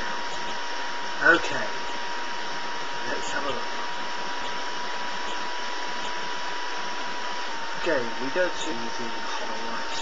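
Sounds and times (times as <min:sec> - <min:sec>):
steady hiss: 0:00.0 - 0:10.0
thin high whine: 0:00.0 - 0:10.0.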